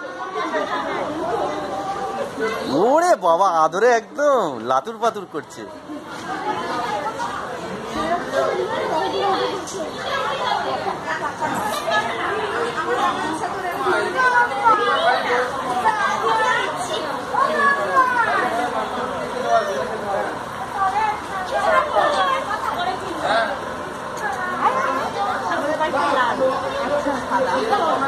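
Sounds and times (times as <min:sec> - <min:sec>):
overlapping chatter: 0:00.0 - 0:28.0.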